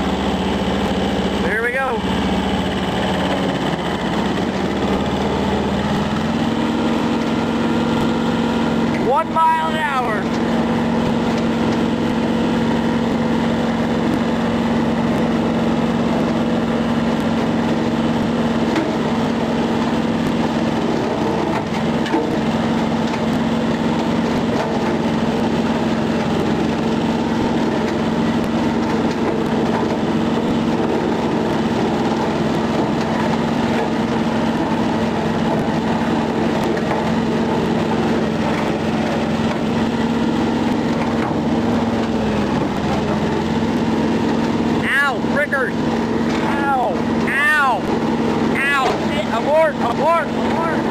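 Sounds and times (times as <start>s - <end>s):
tractor diesel engine running: 0.0s - 50.9s
rotary cutter chopping brush: 0.8s - 50.9s.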